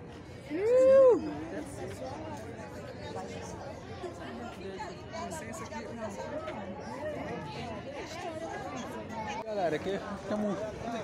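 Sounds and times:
chatter of a small crowd: 0:00.0 - 0:11.0.

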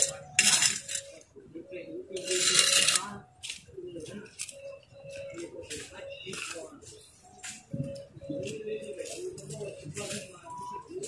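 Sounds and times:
trowel scraping metal pan: 0:00.0 - 0:01.2, 0:02.2 - 0:03.1.

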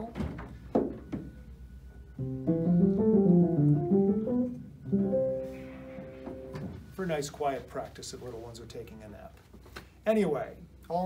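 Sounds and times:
muted upright piano playing: 0:02.1 - 0:06.8.

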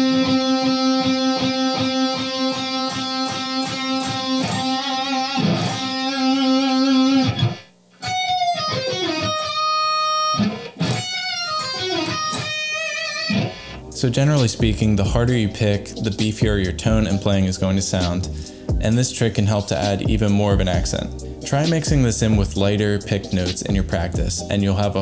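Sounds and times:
electric guitar lead: 0:00.0 - 0:14.1.

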